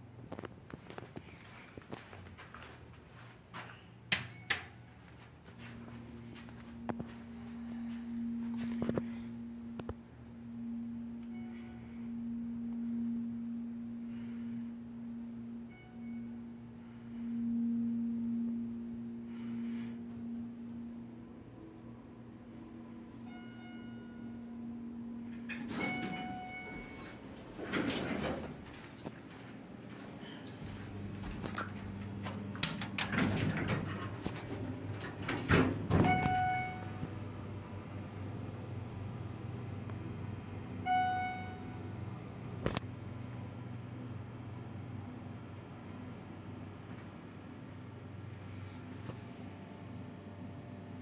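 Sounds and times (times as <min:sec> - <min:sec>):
elevator electrical hum: 0:00.0 - 0:51.0
ringing chime tone: 0:06.1 - 0:27.3, 0:30.5 - 0:31.4, 0:35.2 - 0:37.2, 0:40.9 - 0:42.0
elevator doors sliding shut: 0:25.4 - 0:29.0, 0:30.5 - 0:37.0
faint short beeps: 0:30.5 - 0:31.4, 0:40.9 - 0:42.0.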